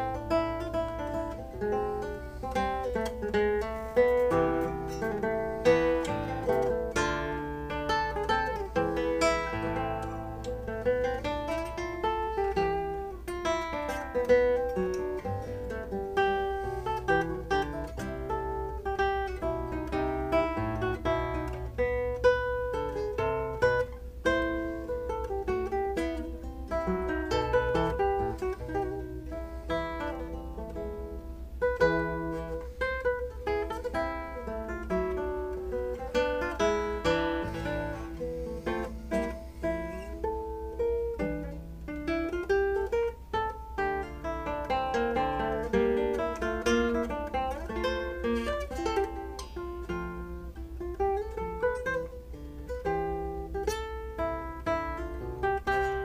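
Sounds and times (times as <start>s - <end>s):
classical guitar fingerstyle: 0.0s - 56.0s.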